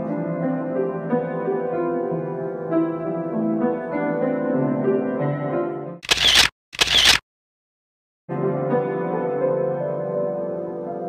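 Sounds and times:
grand piano playing: 0.0 - 6.0, 8.3 - 11.0
sharp noise bursts: 6.0 - 7.2.

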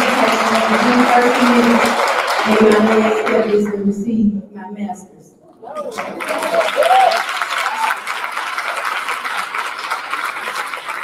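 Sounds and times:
audience applauding: 0.0 - 3.8, 5.8 - 11.0
voices cheering: 5.6 - 8.3.

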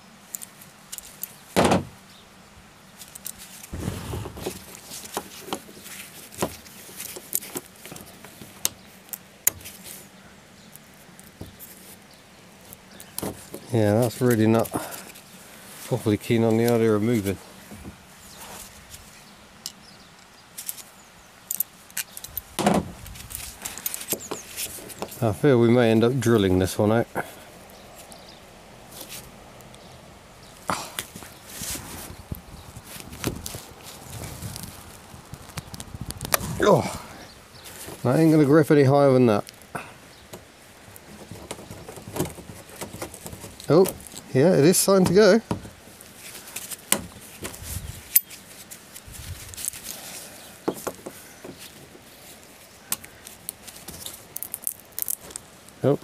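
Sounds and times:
pliers clicking and scraping: 21.5 - 22.5.

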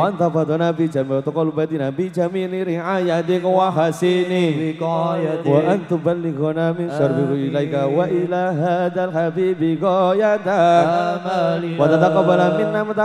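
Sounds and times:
man chanting through microphone: 0.0 - 13.0.

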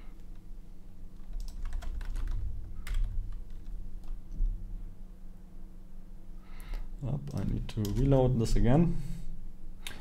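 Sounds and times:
typing on computer keyboard: 1.2 - 4.2.

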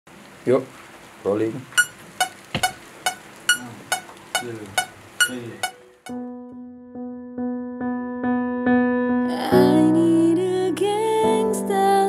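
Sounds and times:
metronome beeps: 1.8 - 6.1.

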